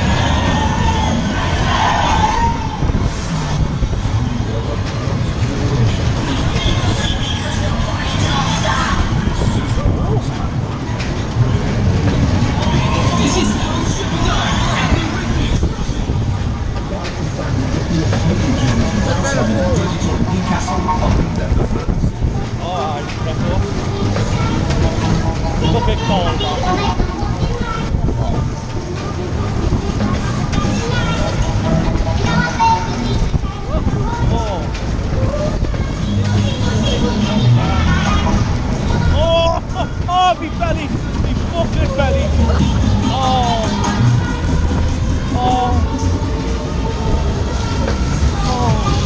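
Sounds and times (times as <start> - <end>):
voices and shouts: 0.0 - 3.0, 12.3 - 16.3, 25.5 - 49.0
fairground ride rumbling: 0.0 - 49.0.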